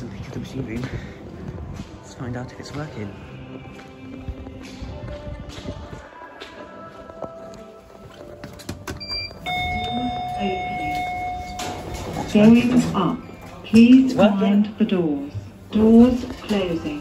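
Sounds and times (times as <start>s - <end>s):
footsteps on tiled floor: 0.0s - 10.0s
background music: 0.0s - 17.0s
steady electronic beep: 9.0s - 12.0s.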